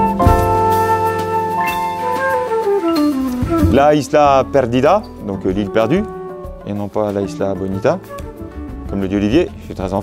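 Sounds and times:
latin jazz melody: 0.0s - 10.0s
man's voice: 3.6s - 6.1s.

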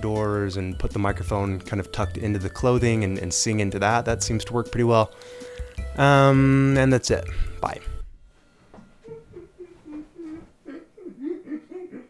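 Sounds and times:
man laughing softly: 9.0s - 12.0s.

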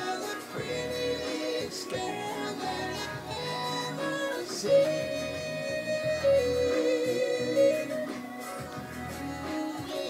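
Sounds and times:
backing music track: 0.0s - 10.0s
talk box melody: 0.1s - 10.0s.

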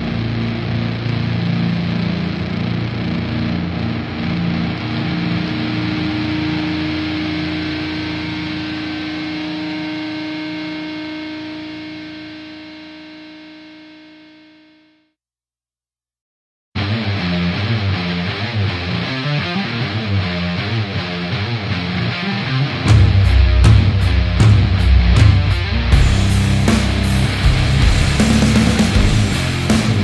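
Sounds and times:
doom metal band playing: 0.0s - 9.8s, 16.8s - 30.0s
guitar chord ringing out: 4.1s - 15.1s, 18.9s - 30.0s.

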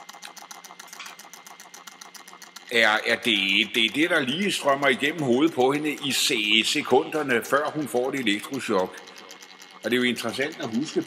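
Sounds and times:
rapid mechanical clicking: 0.0s - 11.0s.

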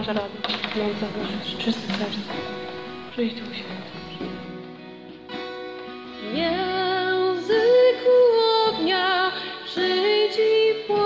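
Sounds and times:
woman singing a hymn: 6.2s - 11.0s.

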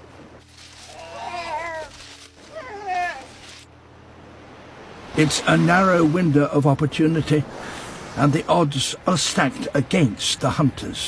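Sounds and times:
sea lion pup crying: 0.6s - 3.7s.

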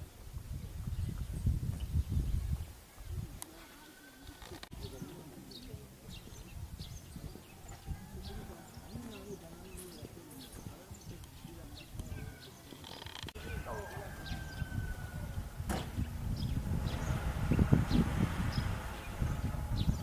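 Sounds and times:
faint distant voices: 0.0s - 20.0s
wind rumble on microphone: 0.0s - 20.0s.

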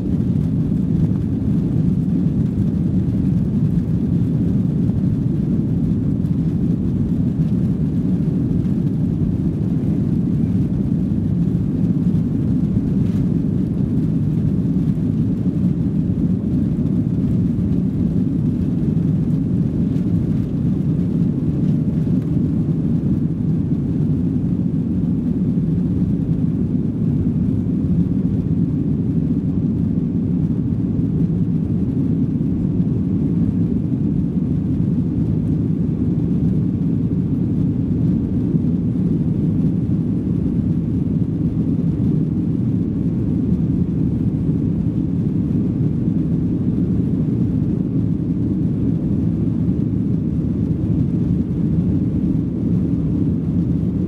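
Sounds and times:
airplane engines low rumble: 0.0s - 54.0s.

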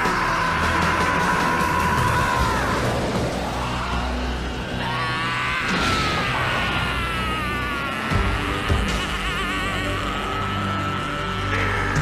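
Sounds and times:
battle yell: 0.0s - 12.0s
soundtrack music: 0.0s - 12.0s.

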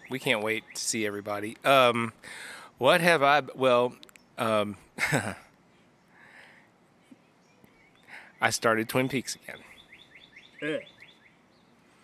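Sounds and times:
small bird chirping: 7.0s - 12.0s.

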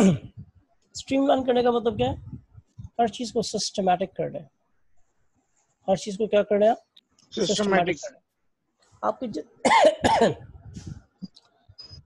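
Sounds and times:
man clearing his throat: 0.0s - 0.4s, 9.7s - 10.4s
man coughing: 9.6s - 10.4s.

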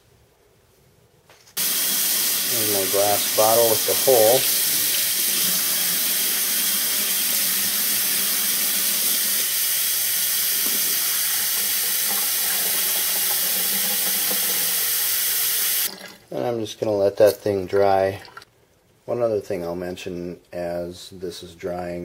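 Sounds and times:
faucet running onto glass bottle: 1.6s - 16.0s
water splashing into sink: 1.6s - 16.3s, 17.3s - 18.5s.

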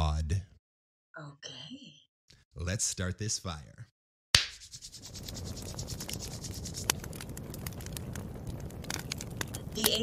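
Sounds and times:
fire popping and snapping: 4.4s - 10.0s
fire rumbling: 4.9s - 10.0s.

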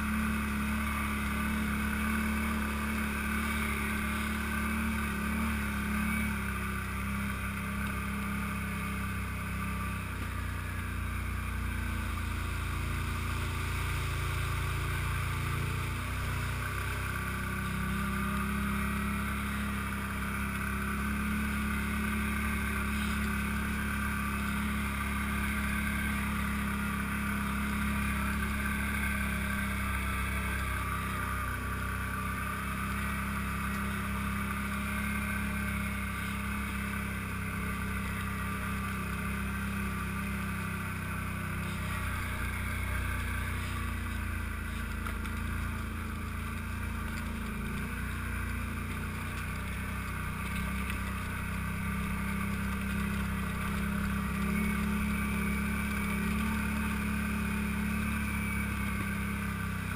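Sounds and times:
atv engine running: 0.0s - 59.9s.

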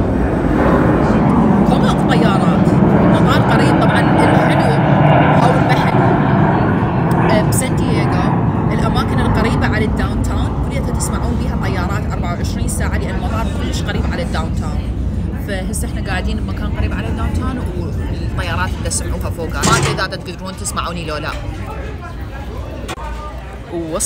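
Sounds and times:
passing engine rumble: 0.0s - 22.0s
background voices: 18.4s - 21.4s.

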